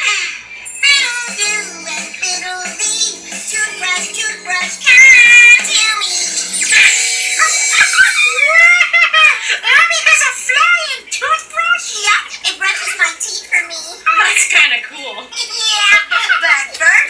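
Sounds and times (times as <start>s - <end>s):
high-pitched tv voices: 0.0s - 17.0s
tv music: 0.0s - 17.0s
giggle-like calls: 6.6s - 9.6s.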